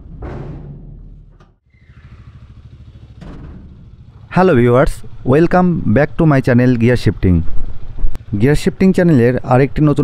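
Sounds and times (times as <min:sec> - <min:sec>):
motorcycle engine idling: 0:01.6 - 0:08.9.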